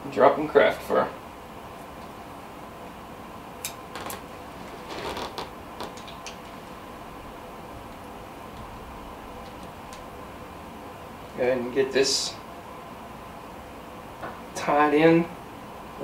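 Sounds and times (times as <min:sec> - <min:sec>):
faint hum: 0:00.0 - 0:16.0
room hiss: 0:00.0 - 0:16.0.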